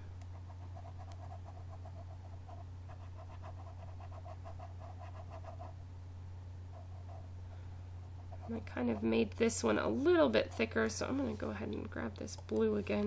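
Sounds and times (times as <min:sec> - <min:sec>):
steady low hum: 0:00.0 - 0:13.0
stylus scribbling on a tablet: 0:00.3 - 0:05.8, 0:06.7 - 0:07.3, 0:08.2 - 0:09.3.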